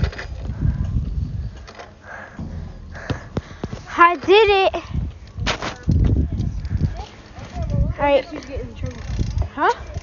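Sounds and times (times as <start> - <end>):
bike riding rumble and knocking: 0.0 - 10.0.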